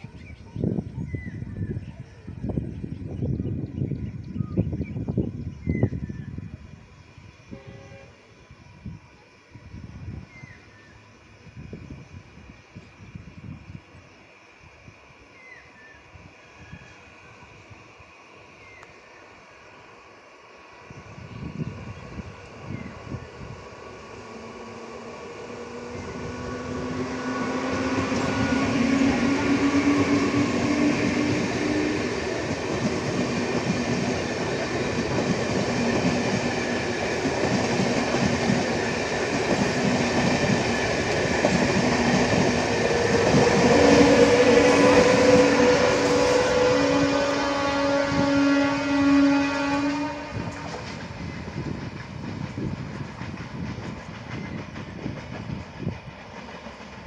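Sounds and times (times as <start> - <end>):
train horn blast: 7.5 - 8.4, 25.7 - 32.2, 43.4 - 50.9
train wheels clattering: 50.4 - 57.0.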